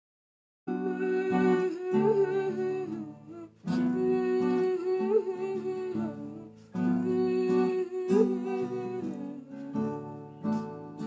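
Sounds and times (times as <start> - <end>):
strummed acoustic guitar: 0.7 - 11.0
woman humming: 0.7 - 11.0.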